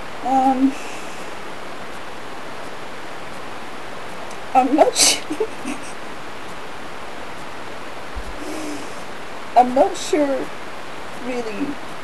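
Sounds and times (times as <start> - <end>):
microphone hiss: 0.0 - 12.0
faint hum of a voice: 0.2 - 1.3, 8.4 - 10.5
soft low bump: 8.1 - 8.5.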